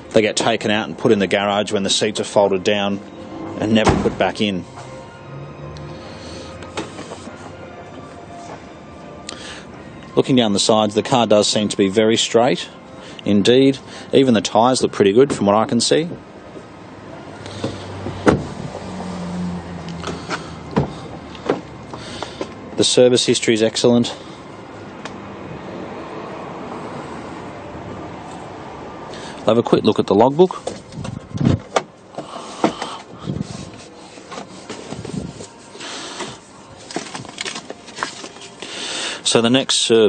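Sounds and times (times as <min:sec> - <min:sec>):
plastic and paper rustling: 0:32.6 - 0:38.9.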